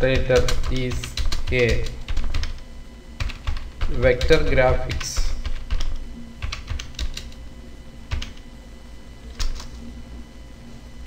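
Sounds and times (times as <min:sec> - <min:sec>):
computer keyboard typing: 0:00.0 - 0:02.6, 0:03.2 - 0:07.4, 0:08.1 - 0:08.5, 0:09.3 - 0:09.8.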